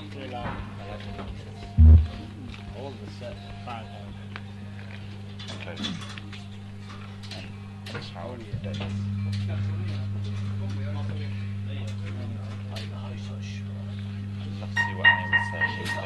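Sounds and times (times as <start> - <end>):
low electrical hum: 1.4 - 5.4, 6.5 - 16.0.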